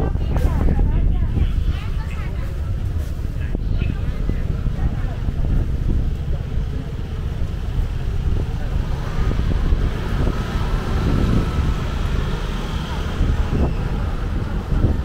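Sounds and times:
faint voices: 0:00.0 - 0:15.0
wind rumble on microphone: 0:00.0 - 0:15.0.

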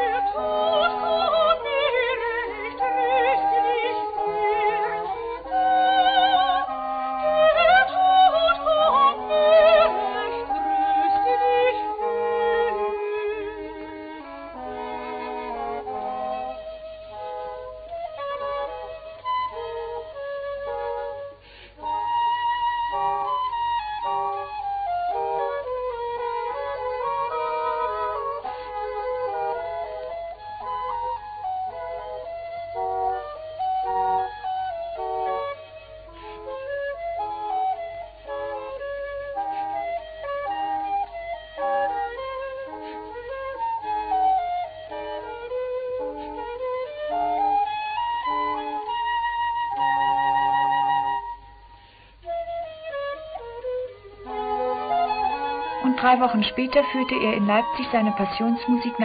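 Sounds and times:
double-reed woodwinds: 0:00.0 - 0:59.0
flute melody: 0:00.0 - 0:59.0.

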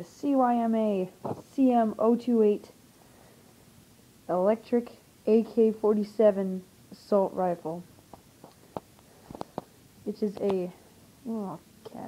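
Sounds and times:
faint sharp clicks and taps: 0:08.1 - 0:10.7.

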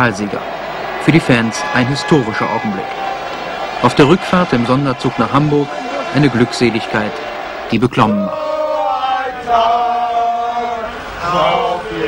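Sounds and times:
football fans chanting: 0:00.3 - 0:12.0.

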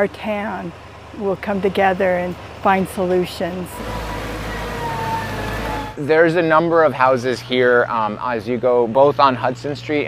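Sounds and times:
diesel engine rumbling: 0:00.0 - 0:10.0.

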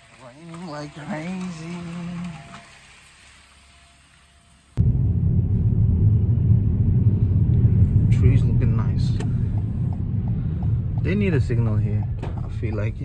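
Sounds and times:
car cabin rumble in rain: 0:04.8 - 0:13.0.

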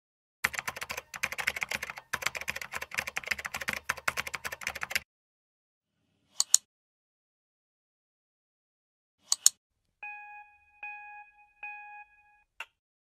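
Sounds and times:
fast keyboard typing: 0:00.4 - 0:05.0.

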